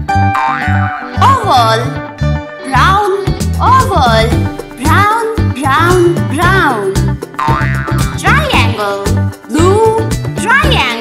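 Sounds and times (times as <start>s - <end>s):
bouncy children's song music: 0.1s - 11.0s.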